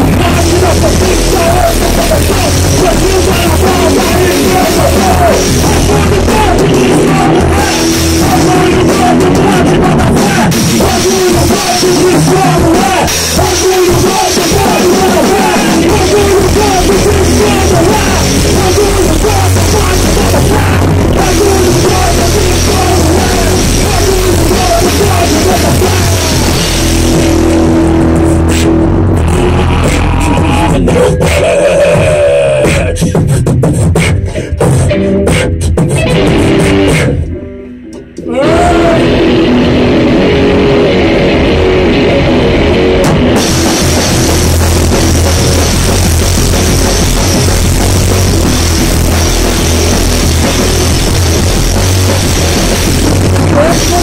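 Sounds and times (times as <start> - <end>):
electric guitar: 0.0 - 33.1, 34.0 - 54.0
drum hits: 0.0 - 37.3, 42.8 - 54.0
bass guitar: 0.0 - 54.0
rock band playing live: 0.0 - 54.0.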